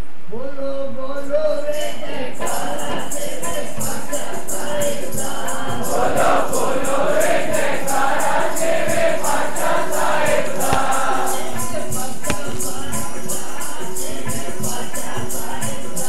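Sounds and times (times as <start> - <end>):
group singing devotional song: 1.8 - 16.0
steady percussive beat: 5.2 - 16.0.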